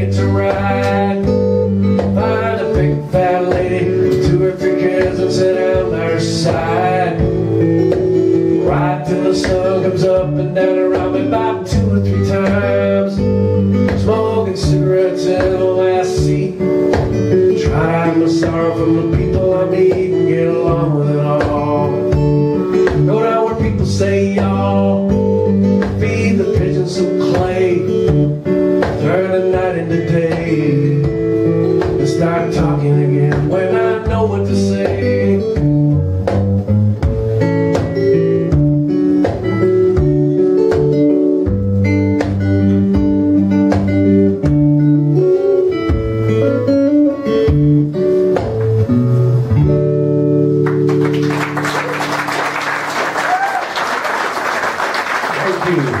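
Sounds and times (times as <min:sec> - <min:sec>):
acoustic guitar playing: 0:00.0 - 0:56.0
audience applause: 0:50.6 - 0:56.0.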